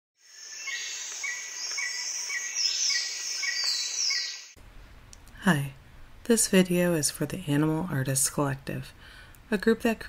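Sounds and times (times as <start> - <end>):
high steady insect hiss: 0.2 - 4.6.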